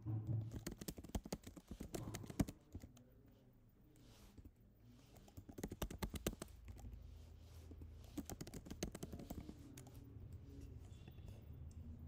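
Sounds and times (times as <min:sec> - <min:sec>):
computer keyboard typing: 0:00.4 - 0:03.1, 0:04.4 - 0:07.0, 0:08.0 - 0:10.0.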